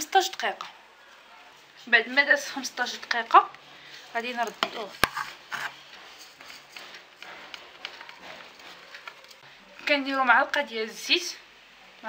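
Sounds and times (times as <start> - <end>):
couscous rustling into a clay dish: 1.1 - 9.5.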